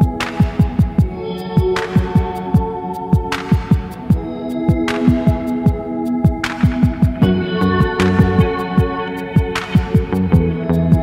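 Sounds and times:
electronic music: 0.0s - 11.0s.

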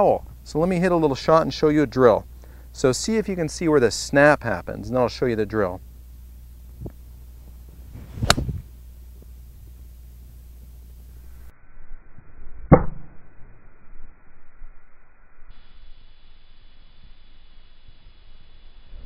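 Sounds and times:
golf club swish and ball strike: 7.7s - 8.7s.

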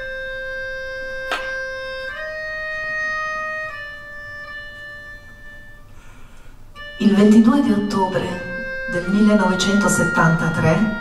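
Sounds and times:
melodica sustained note: 0.0s - 11.0s.

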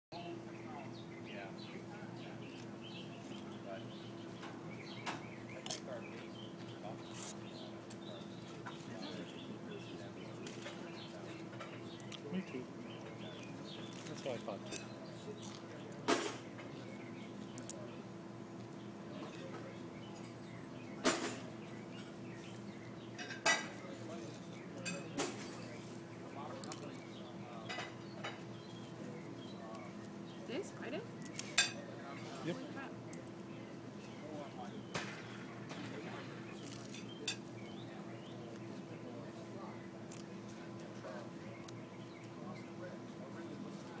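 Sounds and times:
faint background voices: 0.1s - 44.0s
small birds chirping: 0.1s - 44.0s
steady low hum: 0.1s - 44.0s.

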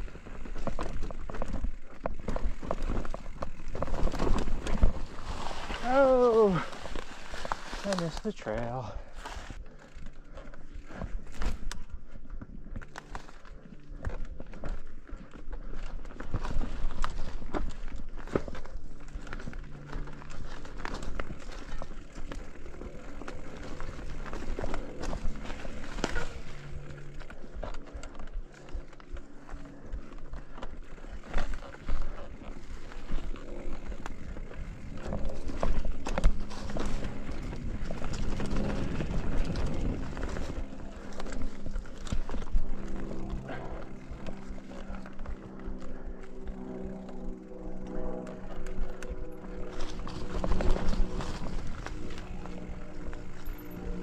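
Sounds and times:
bike rattling over rocks: 0.0s - 54.0s
bike tyres rumbling on dirt: 0.0s - 54.0s.

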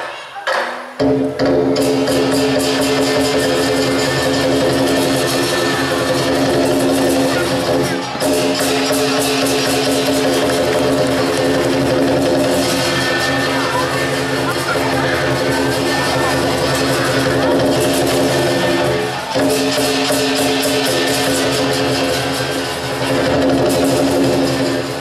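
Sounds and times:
fast drum strikes: 0.5s - 25.0s
cymbal strikes: 1.0s - 25.0s.

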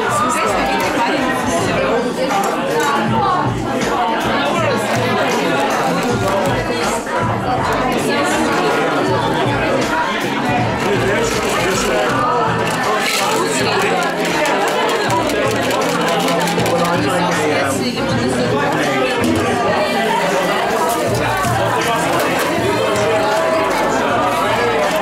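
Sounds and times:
chatter of many people: 0.0s - 25.0s.

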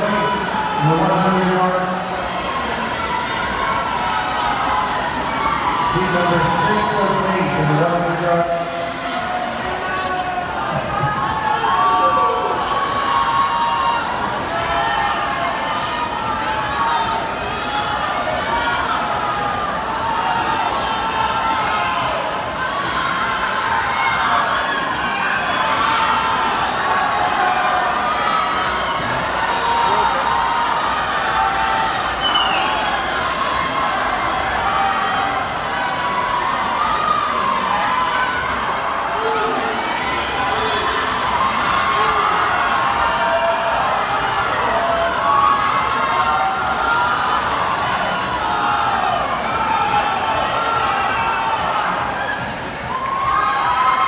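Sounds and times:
crowd cheering and shouting: 0.0s - 54.0s.

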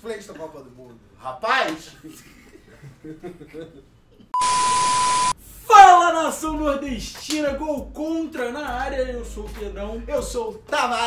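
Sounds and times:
tv static hiss: 4.4s - 5.3s
high test-tone beep: 4.4s - 5.4s.

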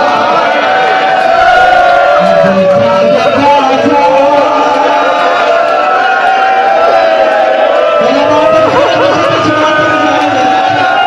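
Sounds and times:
mourning crowd: 0.0s - 11.0s
man chanting through microphone: 2.2s - 5.2s, 8.0s - 11.0s.

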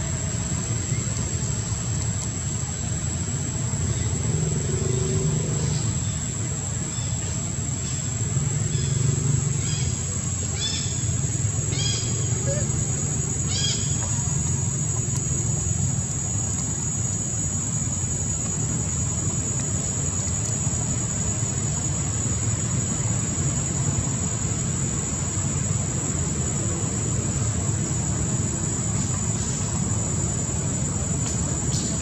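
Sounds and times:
low outdoor rumble: 0.0s - 32.0s.

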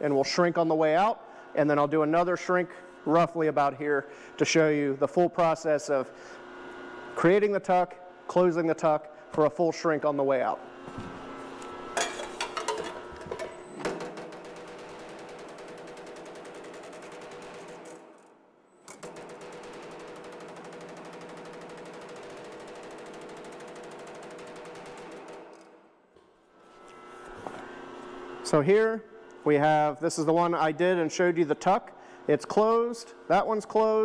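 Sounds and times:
power hammer striking sheet steel: 12.0s - 18.3s, 18.9s - 25.8s.

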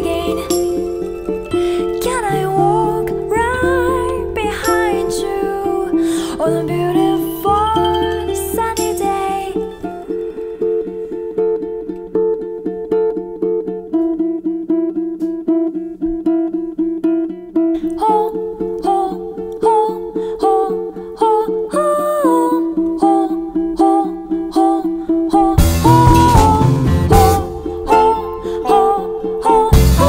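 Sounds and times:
higher melody with sliding notes: 0.0s - 21.8s, 22.5s - 30.0s
ukulele plucked notes: 0.0s - 30.0s.

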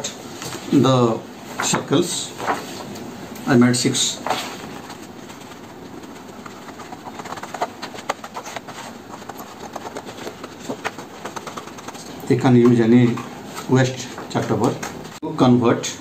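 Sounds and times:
paper rustling: 1.5s - 15.2s
scissors snipping paper: 4.2s - 12.8s.

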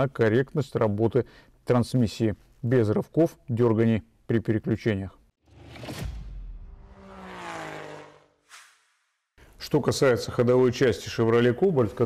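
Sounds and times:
short soft swish: 8.4s - 9.2s.

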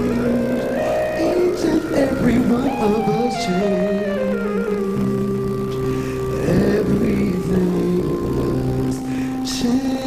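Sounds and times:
man singing: 0.0s - 4.4s, 6.2s - 10.0s
long held gospel chords: 0.0s - 10.0s.

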